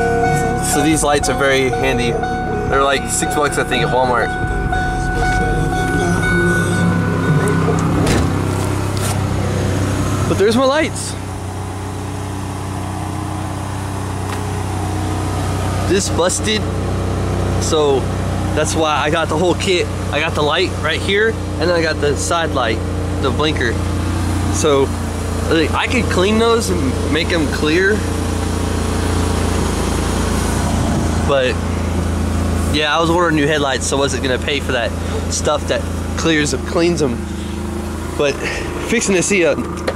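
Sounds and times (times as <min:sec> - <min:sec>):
car engine idling: 0:00.0 - 0:39.9.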